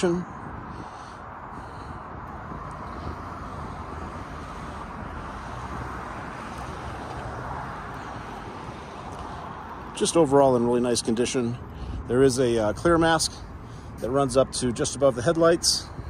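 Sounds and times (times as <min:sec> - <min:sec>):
distant road traffic rumble: 0:00.0 - 0:16.0.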